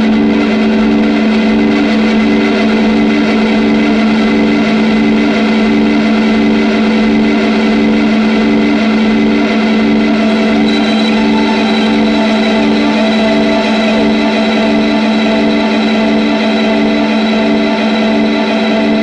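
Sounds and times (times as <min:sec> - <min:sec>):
overdriven electric guitar chord: 0:00.0 - 0:19.0.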